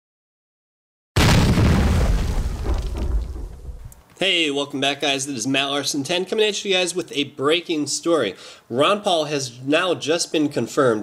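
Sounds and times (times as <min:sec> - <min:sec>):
deep cinematic boom: 0:01.2 - 0:04.0.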